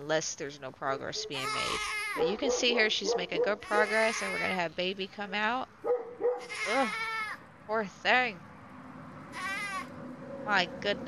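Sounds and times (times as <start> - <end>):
goat bleating in labour: 3.6 - 4.6, 9.4 - 9.9.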